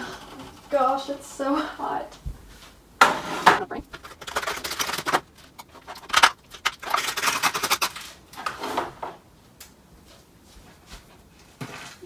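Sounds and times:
oven mitts rustling: 0:03.6 - 0:12.0.

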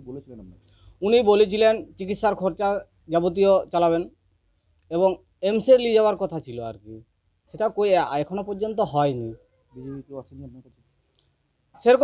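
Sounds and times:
man talking: 0:00.0 - 0:04.2, 0:04.9 - 0:10.8, 0:11.8 - 0:12.0.

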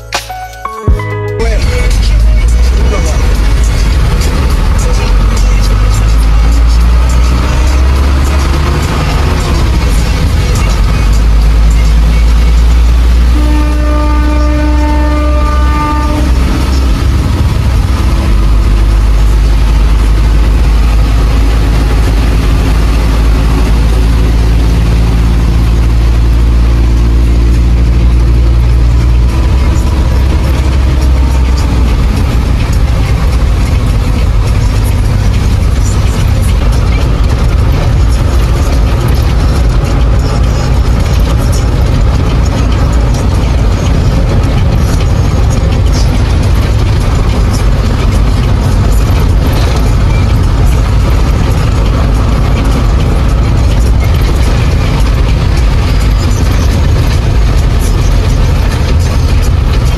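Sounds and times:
engine and road rumble: 0:00.0 - 0:59.9
vehicle horn long blast: 0:13.3 - 0:16.8.

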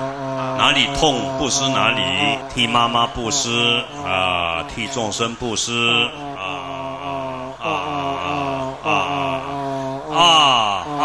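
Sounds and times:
person chanting into a microphone: 0:00.0 - 0:11.0.

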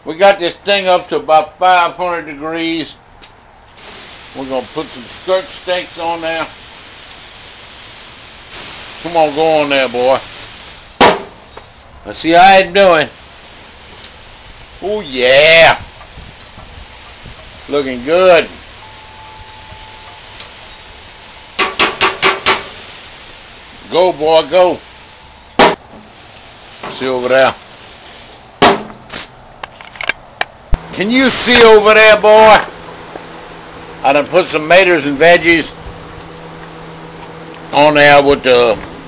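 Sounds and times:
short hiss: 0:03.7 - 0:29.4
steak searing: 0:03.8 - 0:29.4, 0:30.7 - 0:39.0.

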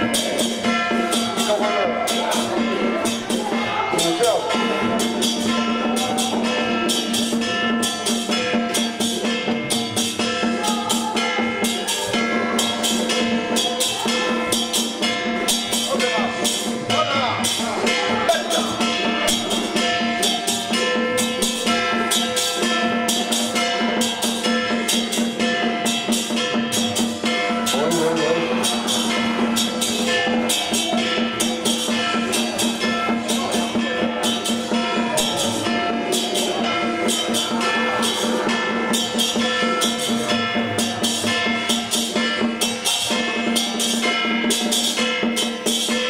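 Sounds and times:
drum and metal percussion beat: 0:00.0 - 0:46.0
voice chanting: 0:27.6 - 0:31.7.

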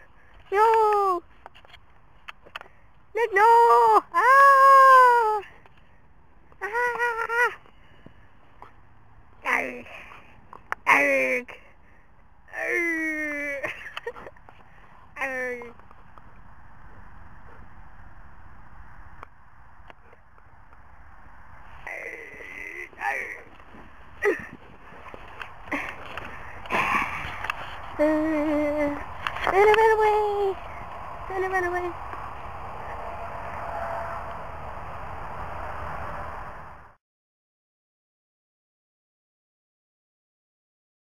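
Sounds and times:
breathy rustling: 0:23.6 - 0:29.2
short high-pitched wavering cry: 0:32.8 - 0:35.1.

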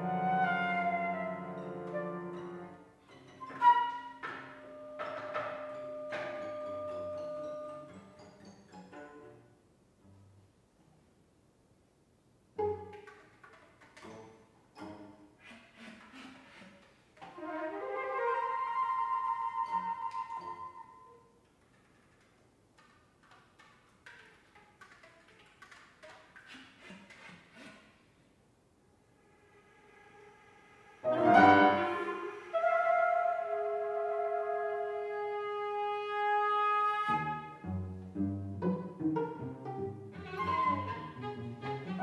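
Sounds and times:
contemporary chamber music: 0:00.0 - 0:11.1, 0:12.5 - 0:27.9, 0:29.1 - 0:42.0.

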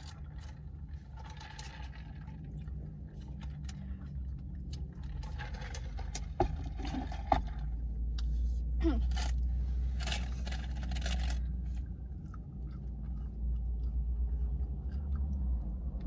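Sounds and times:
rustling inside car: 0:00.0 - 0:13.4
car engine idling: 0:00.0 - 0:16.0.

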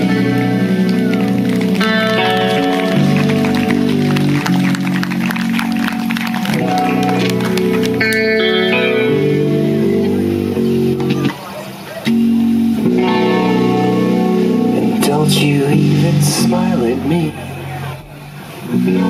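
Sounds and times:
electric guitar chords: 0:00.0 - 0:19.0.

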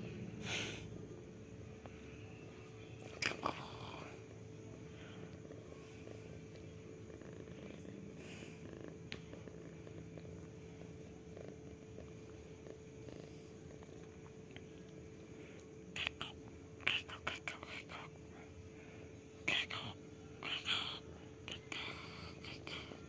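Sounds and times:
cat purring: 0:00.0 - 0:23.0.

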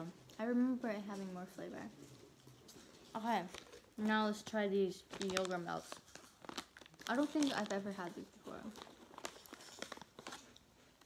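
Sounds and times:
snack pouch crinkling: 0:03.0 - 0:04.0, 0:05.0 - 0:11.0.

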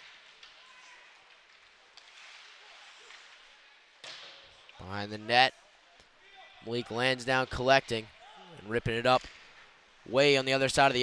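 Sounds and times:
skates on ice: 0:00.0 - 0:04.7.

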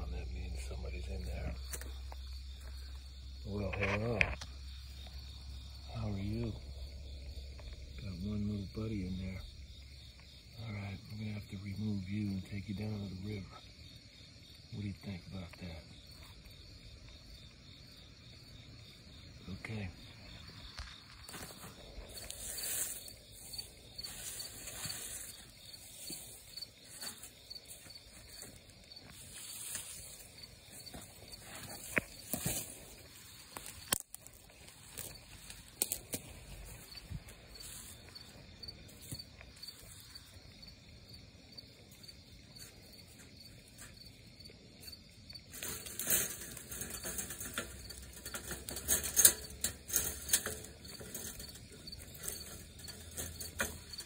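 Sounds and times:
crickets chirping: 0:00.0 - 0:54.0
rustling and knocks: 0:45.5 - 0:54.0.

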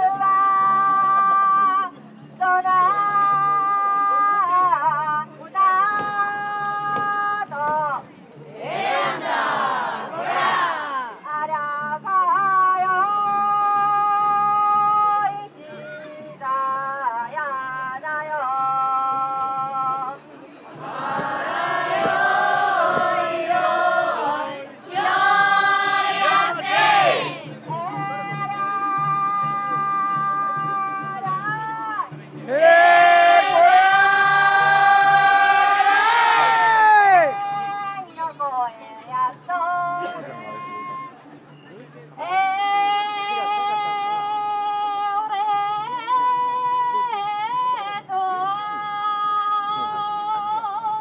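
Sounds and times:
person singing through a megaphone: 0:20.8 - 0:41.1.

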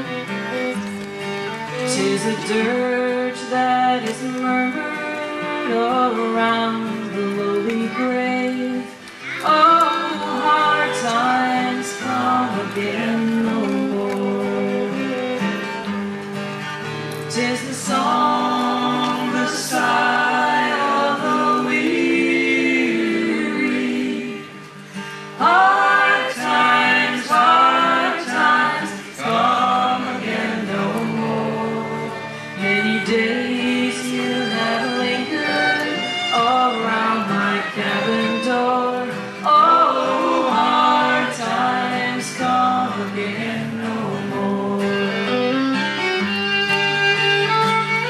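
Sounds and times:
fiddle: 0:00.0 - 0:48.0
strummed acoustic guitar: 0:00.0 - 0:48.0
woman and man singing: 0:01.8 - 0:15.5, 0:17.3 - 0:24.8, 0:25.4 - 0:45.6.

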